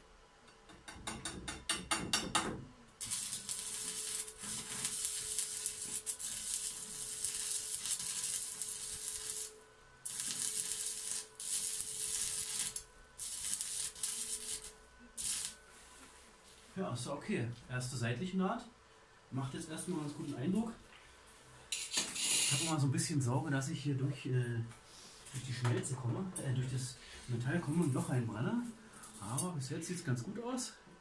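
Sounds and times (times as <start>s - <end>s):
welding arc crackling and sizzling: 3.0s - 15.7s, 21.7s - 22.8s, 26.8s - 29.4s.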